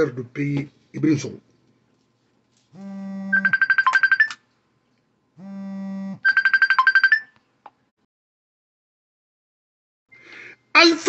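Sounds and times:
phone ringtone: 2.8s - 4.4s, 5.4s - 7.4s.

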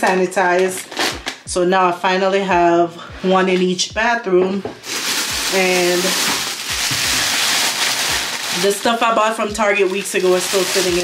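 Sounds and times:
plastic bag rustling: 4.8s - 11.0s.

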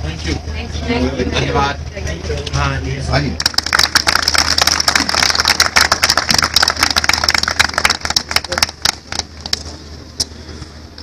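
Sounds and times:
crowd applauding: 3.4s - 9.6s.

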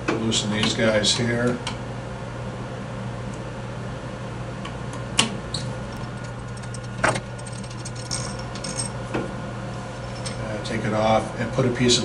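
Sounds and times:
steady low hum: 0.0s - 12.0s
light metal clinking: 6.0s - 9.0s.

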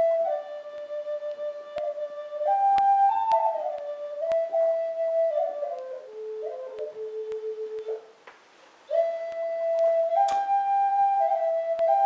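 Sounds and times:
flute playing slow melody: 0.0s - 8.2s, 8.8s - 12.0s.

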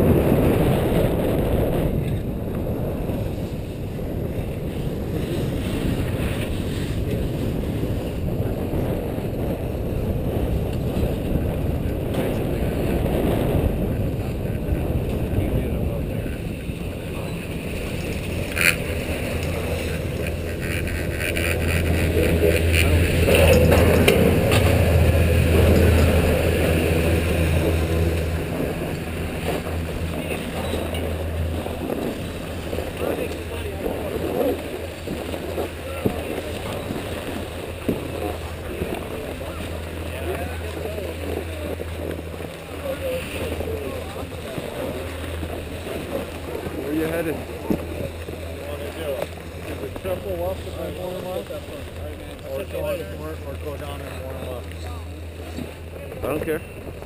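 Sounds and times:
wind buffeting microphone: 0.0s - 57.0s
lift machinery hum: 16.1s - 57.0s.

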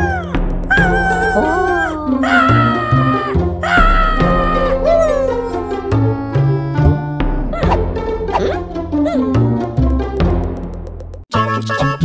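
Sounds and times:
high drawn-out vocal cry: 0.0s - 5.5s
cartoon background music: 0.0s - 12.0s.

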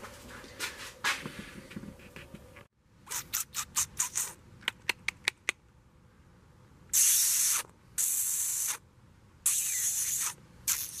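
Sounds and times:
short bursts of hissing: 6.9s - 8.8s, 9.4s - 11.0s.

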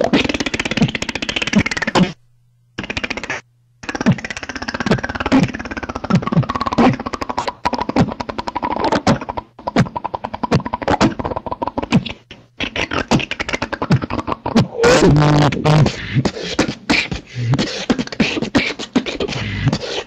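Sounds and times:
beatboxing: 0.0s - 2.2s, 2.8s - 20.0s.

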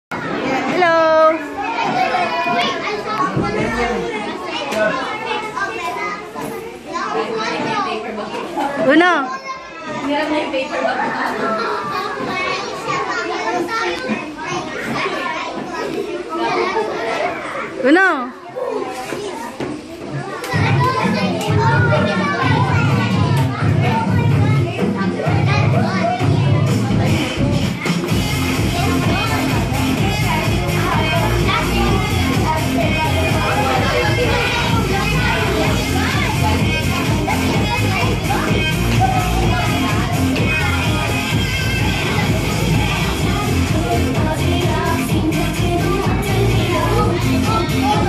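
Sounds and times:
children talking and calling out: 0.1s - 48.0s
dance track with pulsing bass: 26.7s - 48.0s.

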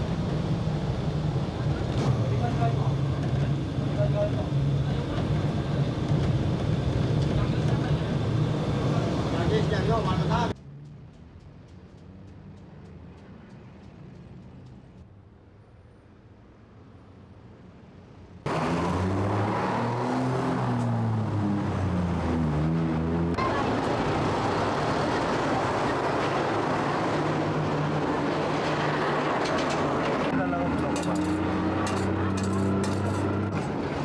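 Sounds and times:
street traffic noise: 0.0s - 34.0s
voices: 23.3s - 33.3s.

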